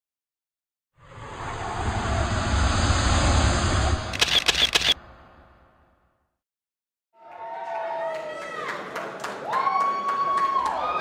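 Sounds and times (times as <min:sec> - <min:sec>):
deep rumble: 0:01.0 - 0:06.0
rising whoosh: 0:01.0 - 0:06.1
sharp clicks: 0:04.1 - 0:05.0.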